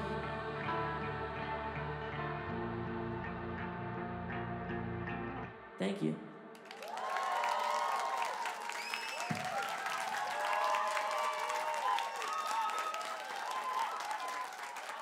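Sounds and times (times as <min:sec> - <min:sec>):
audience applause: 0:06.5 - 0:15.0
crowd cheering and whooping: 0:06.6 - 0:15.0.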